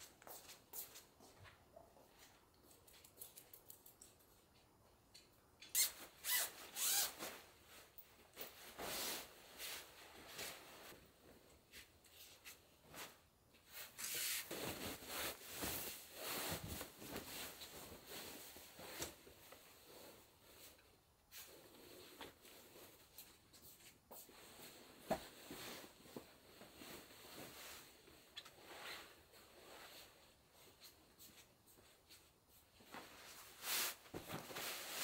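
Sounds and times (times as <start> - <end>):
bedding rustling: 6.0 - 35.0.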